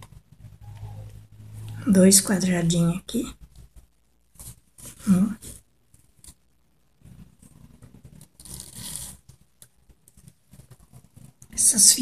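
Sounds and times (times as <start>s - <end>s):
cloth rustling: 3.4s - 11.6s
ribbon pulled through fabric: 7.1s - 9.5s.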